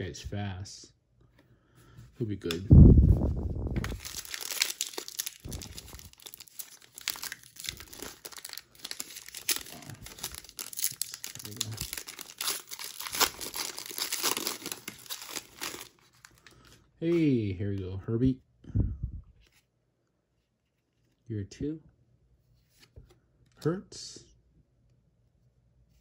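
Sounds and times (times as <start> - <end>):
foil wrapper tearing and crinkling: 3.8 - 16.5.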